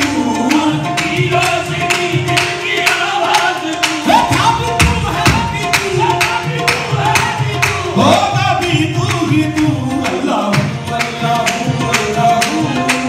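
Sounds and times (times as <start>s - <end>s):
harmoniums holding notes: 0.0s - 13.0s
men singing: 0.0s - 13.0s
tabla beat: 0.0s - 13.0s
hand-claps: 9.0s - 13.0s.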